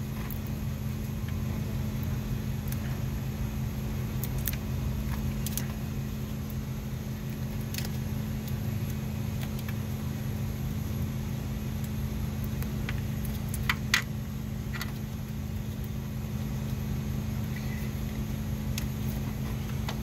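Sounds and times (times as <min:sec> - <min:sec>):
engine humming: 0:00.0 - 0:20.0.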